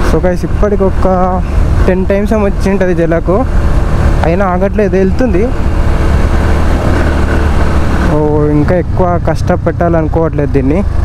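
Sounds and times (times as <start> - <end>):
motorcycle engine cruising: 0.0 - 11.0
wind rush on microphone: 0.0 - 11.0.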